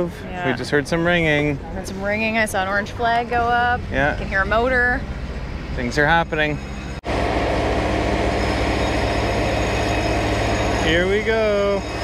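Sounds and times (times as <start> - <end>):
bridge motor pulsing rumble: 2.1 - 12.0.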